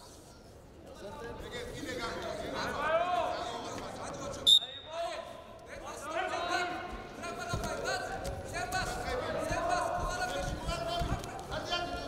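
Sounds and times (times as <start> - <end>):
referee's whistle blast: 4.5 - 4.9.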